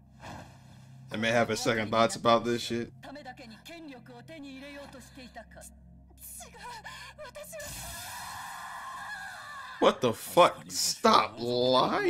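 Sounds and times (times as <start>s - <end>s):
man speaking: 1.1s - 2.9s
woman speaking: 3.0s - 7.7s.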